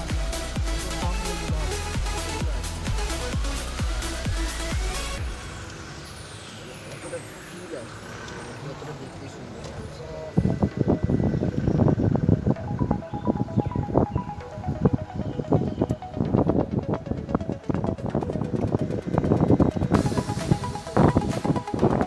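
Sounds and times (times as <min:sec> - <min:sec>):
background music with steady beat: 0:00.0 - 0:08.4, 0:10.6 - 0:22.0.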